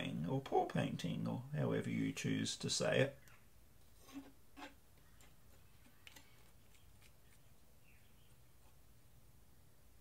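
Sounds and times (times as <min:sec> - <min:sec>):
faint clicks and taps of canvas: 0:05.0 - 0:07.6.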